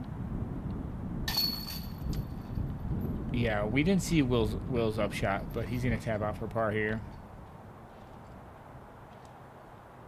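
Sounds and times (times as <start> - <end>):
low steady rumble: 0.0 - 9.1
metal chains jingling: 1.3 - 2.5.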